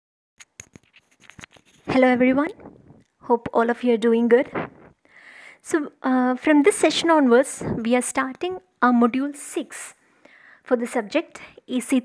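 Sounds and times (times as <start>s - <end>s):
faint clicks and rustles: 0.4s - 3.2s, 4.5s - 5.0s
person speaking: 0.7s - 5.0s, 5.7s - 9.8s.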